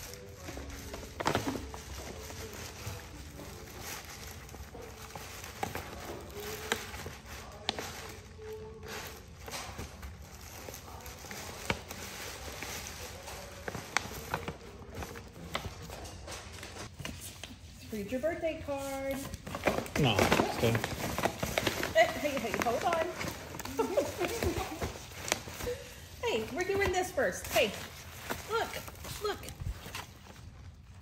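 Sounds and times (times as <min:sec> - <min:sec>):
paper bag crinkling: 0:00.0 - 0:17.0, 0:18.8 - 0:31.0
faint music: 0:00.0 - 0:31.0.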